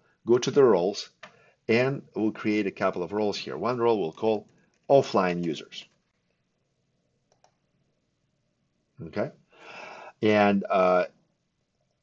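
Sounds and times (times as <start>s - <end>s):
faint clicks: 4.4s - 4.9s, 7.2s - 7.7s.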